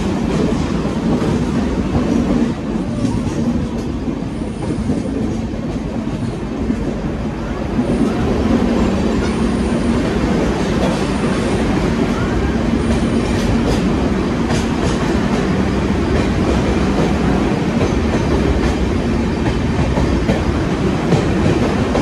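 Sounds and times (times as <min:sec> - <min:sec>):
train rumbling through a tunnel: 0:00.0 - 0:22.0.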